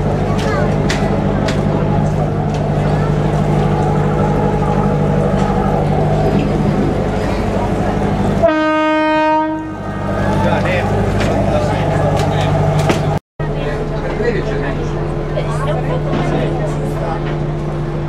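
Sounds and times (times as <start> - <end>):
ferry diesel engine humming: 0.0 - 18.0
ship's horn blast: 1.3 - 13.1.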